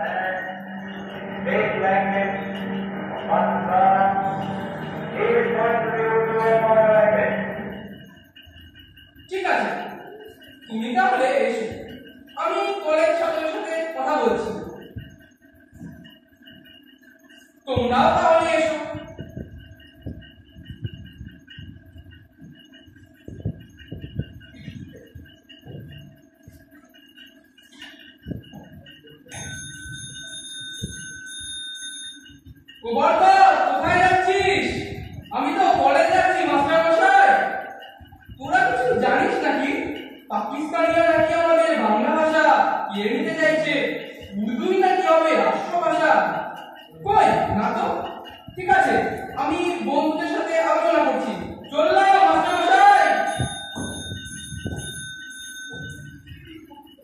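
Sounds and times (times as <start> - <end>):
bell-like ringing tone: 0.0 - 57.0.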